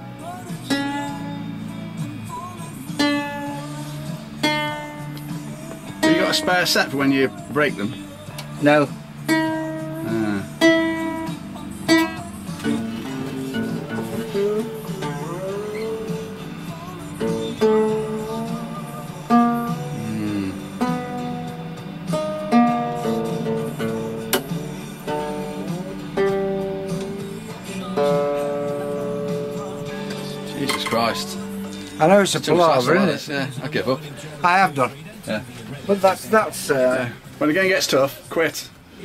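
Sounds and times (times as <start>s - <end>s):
guitar strings plucked in tuning: 3.0s - 32.9s.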